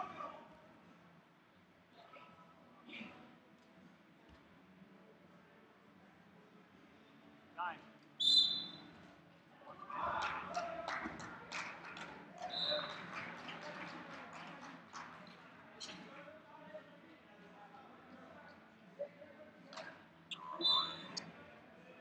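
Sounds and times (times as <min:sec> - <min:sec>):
referee's whistle blasts: 0:08.2 - 0:08.8, 0:20.5 - 0:21.2
people talking: 0:09.6 - 0:22.0.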